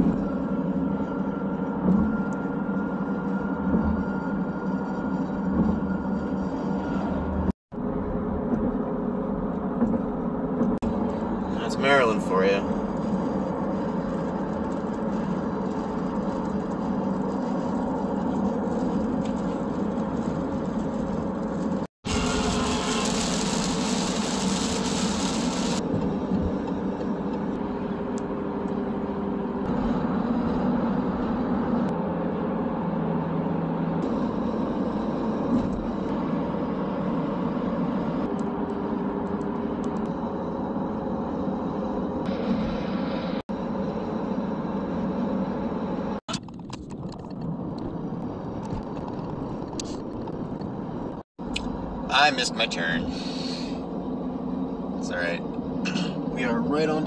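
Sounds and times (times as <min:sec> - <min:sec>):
car road and engine noise: 0:00.0 - 0:57.0
high hiss: 0:22.1 - 0:25.8.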